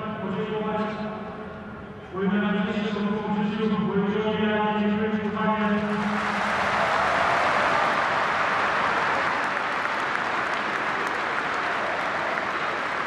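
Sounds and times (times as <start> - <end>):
stadium crowd applauding: 5.8 - 13.0.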